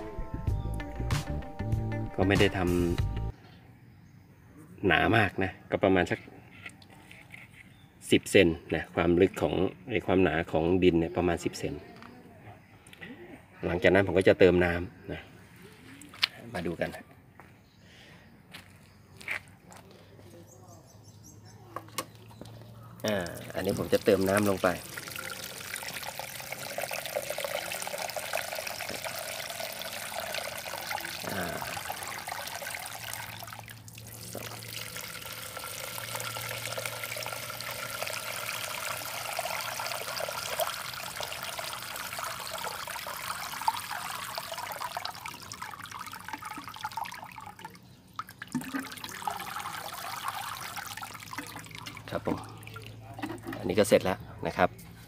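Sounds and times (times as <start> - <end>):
water splashing from sprinkler: 23.0 - 53.7.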